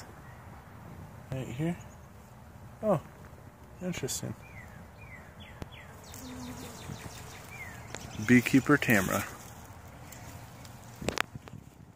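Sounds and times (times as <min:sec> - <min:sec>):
faint bird chirps: 0:04.4 - 0:08.6
honeybee buzzing: 0:04.5 - 0:11.0.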